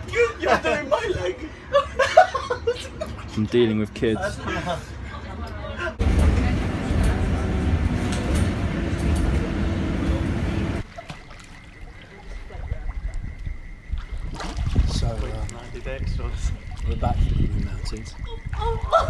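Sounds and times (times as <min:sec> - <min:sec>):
voices: 0:00.0 - 0:10.8, 0:14.9 - 0:19.0
vehicle ride rumble: 0:06.0 - 0:10.9
water sloshing in pool: 0:06.1 - 0:19.0.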